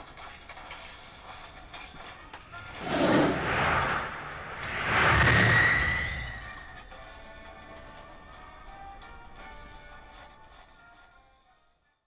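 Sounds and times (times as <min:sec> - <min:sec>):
whooshing swoosh effect: 0:02.6 - 0:06.9
falling high whistle: 0:04.6 - 0:07.0.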